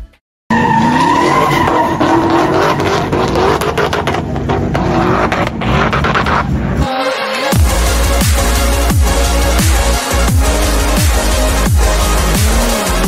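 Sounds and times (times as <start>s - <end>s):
tyres squealing: 0.5s - 6.6s
car engine at high revs: 0.5s - 6.9s.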